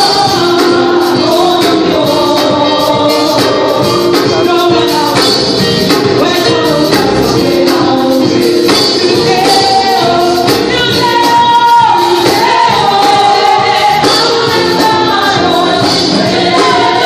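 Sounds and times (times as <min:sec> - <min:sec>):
amplified musical accompaniment: 0:00.0 - 0:17.0
woman singing into a microphone: 0:00.0 - 0:17.0.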